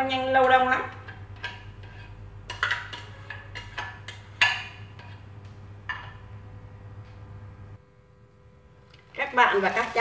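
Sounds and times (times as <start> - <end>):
faint steady hum: 0.0 - 10.0
spatula scraping glass bowl: 1.4 - 5.2.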